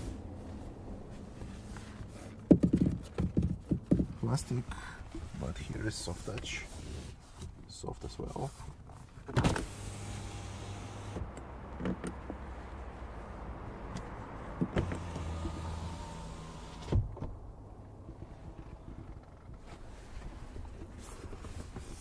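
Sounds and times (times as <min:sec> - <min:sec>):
window motor humming: 0:09.6 - 0:11.5, 0:14.7 - 0:16.9.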